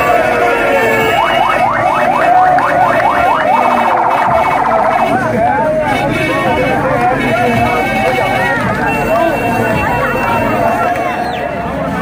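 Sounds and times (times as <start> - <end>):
crowd shouting and chanting: 0.0 - 12.0
electronic siren whooping and warbling: 0.9 - 5.7.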